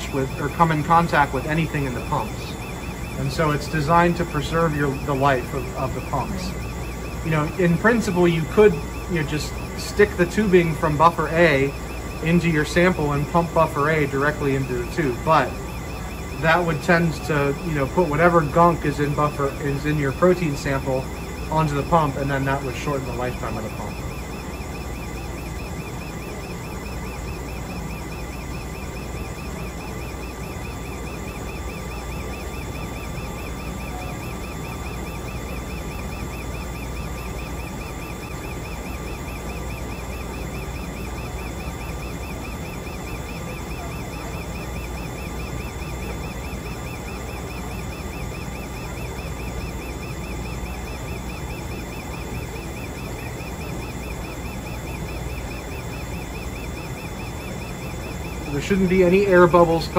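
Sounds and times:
faint high-pitched whine: 0:00.0 - 0:59.9
fast pulsing: 0:00.0 - 0:59.9
machine hum and whir: 0:00.0 - 0:59.9.

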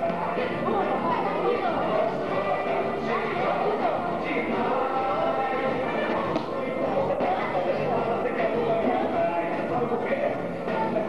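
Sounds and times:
background music: 0:00.0 - 0:11.0
children chattering: 0:00.0 - 0:11.0.

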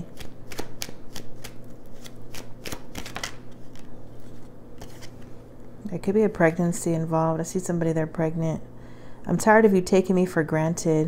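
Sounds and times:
cards being shuffled: 0:00.0 - 0:05.4.

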